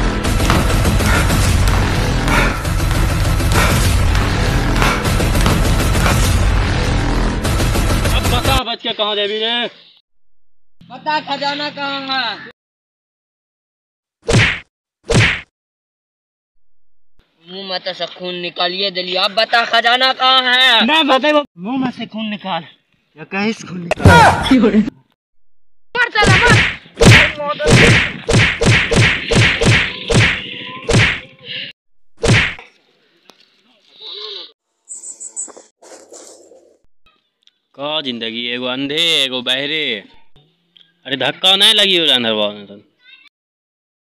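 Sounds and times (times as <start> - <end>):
punch sound effects: 0.1 - 6.7, 14.3 - 15.5, 26.2 - 31.2, 32.2 - 32.6.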